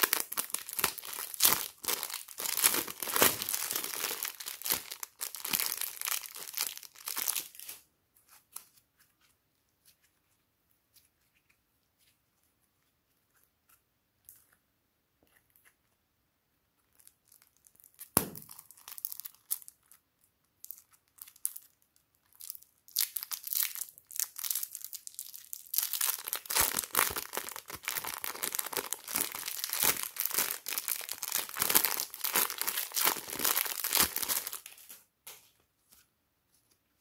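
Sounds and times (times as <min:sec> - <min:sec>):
plastic bag crinkling: 0:00.0 - 0:07.8, 0:16.9 - 0:20.0, 0:20.6 - 0:35.0.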